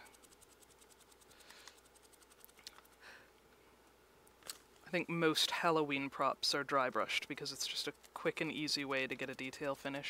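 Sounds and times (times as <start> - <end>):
paintbrush scratching on foam: 0.0 - 3.0, 7.0 - 10.0.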